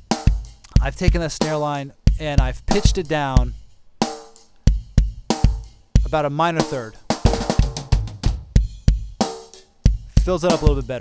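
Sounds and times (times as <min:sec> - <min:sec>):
rock drum kit beat: 0:00.0 - 0:11.0.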